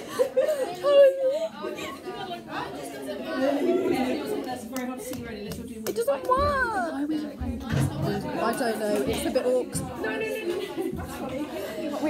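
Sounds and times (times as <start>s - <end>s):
girls talking over one another: 0.7s - 12.0s.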